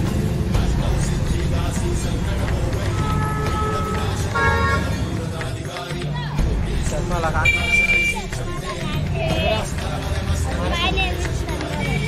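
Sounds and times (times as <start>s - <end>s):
vehicle horns honking: 2.9s - 5.1s, 7.4s - 8.4s.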